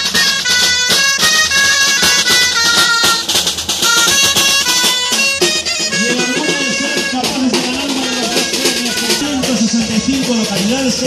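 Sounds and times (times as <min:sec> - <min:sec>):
dulzainas playing a melody: 0:00.0 - 0:11.0
steady drum beat: 0:00.0 - 0:11.0.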